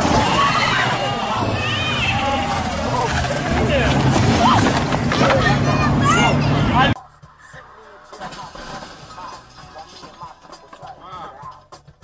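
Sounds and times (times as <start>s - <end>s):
car engine running: 0.0s - 7.0s
people screaming and shouting: 0.0s - 7.6s.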